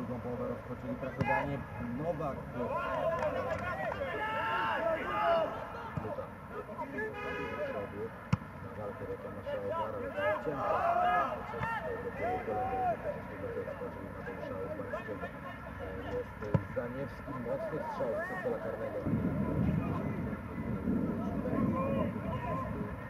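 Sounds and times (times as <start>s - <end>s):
men shouting and calling: 1.0s - 8.2s, 9.2s - 16.4s, 17.2s - 20.2s, 21.0s - 23.0s.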